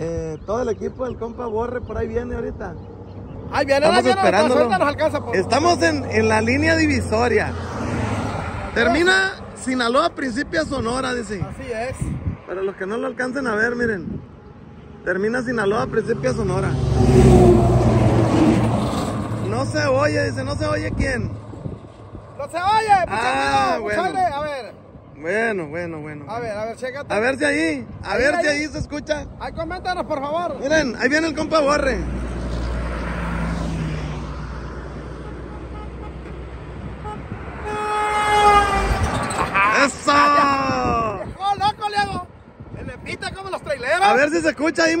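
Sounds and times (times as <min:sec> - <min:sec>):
semi-truck passing by: 0:02.8 - 0:11.1, 0:14.3 - 0:24.2, 0:29.3 - 0:41.4
heavy vehicle engine rumble: 0:14.0 - 0:25.2, 0:27.6 - 0:43.5
vehicle horn blast: 0:35.1 - 0:39.6.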